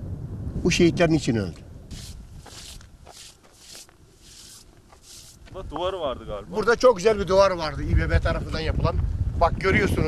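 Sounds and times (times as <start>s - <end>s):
hand brushing across stone: 1.9s - 6.0s.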